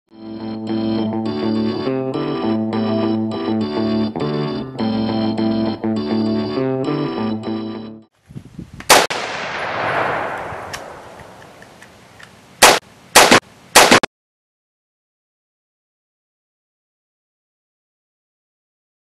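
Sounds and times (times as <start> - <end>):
distorted electric guitar music: 0.1 - 8.1
loud gunshot blast with rumble: 8.9 - 11.4
quick loud gunshots: 8.9 - 11.6, 12.6 - 14.1.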